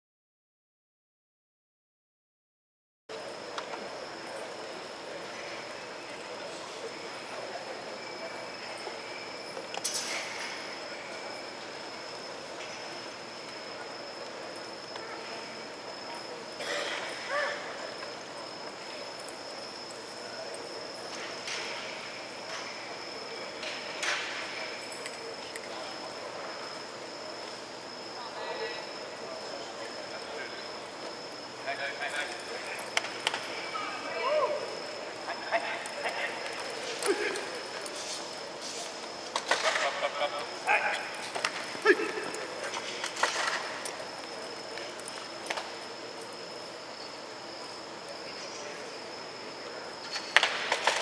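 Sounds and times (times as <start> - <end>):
thin high whine: 3.1 - 51.0.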